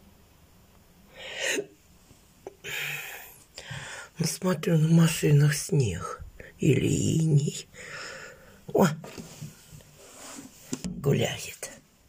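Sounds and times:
noisy breaths close to microphone: 1.1 - 4.2, 7.7 - 10.8.

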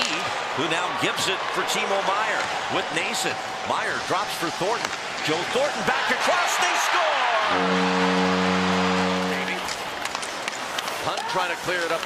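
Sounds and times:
crowd cheering: 5.5 - 10.0, 11.0 - 11.8
goal horn low note: 7.4 - 9.7.

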